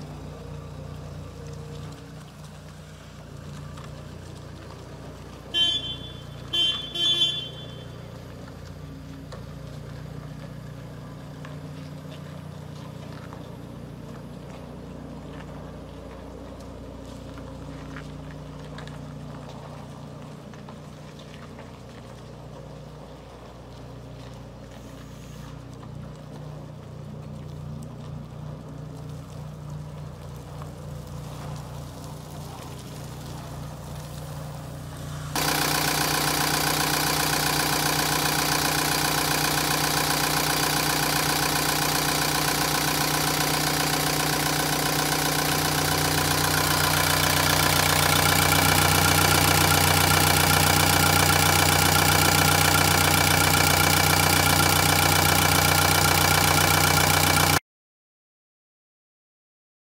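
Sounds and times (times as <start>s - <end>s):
diesel engine idling: 0.0s - 57.6s.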